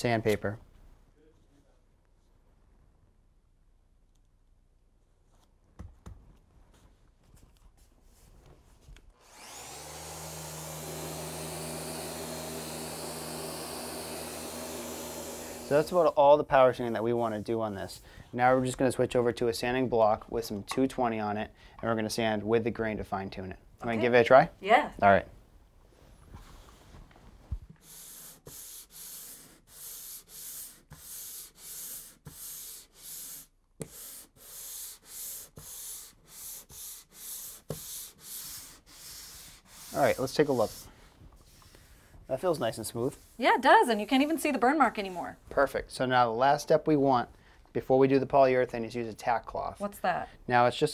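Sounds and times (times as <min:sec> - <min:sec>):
orbital sander humming: 0:09.2 - 0:16.2
sanding pad hissing on wood: 0:09.3 - 0:16.2, 0:27.8 - 0:45.3.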